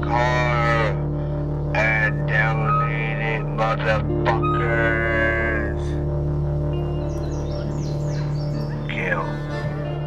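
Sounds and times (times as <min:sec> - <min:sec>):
low drone of held tones: 0:00.0 - 0:10.0.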